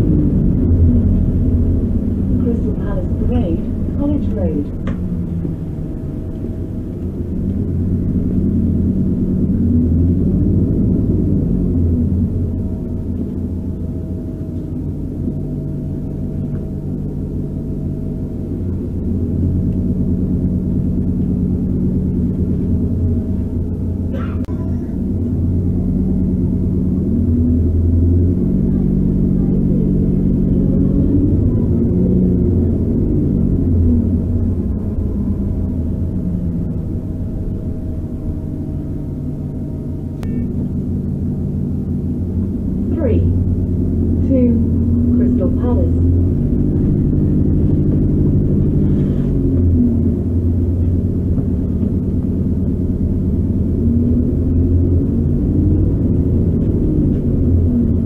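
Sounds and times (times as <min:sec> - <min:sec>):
bus engine rising and falling: 0:00.0 - 0:58.0
steady drivetrain whine: 0:00.0 - 0:58.0.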